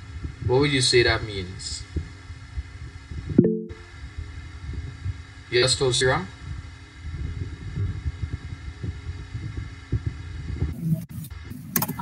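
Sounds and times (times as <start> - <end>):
cluster of low tones: 3.4 - 4.0.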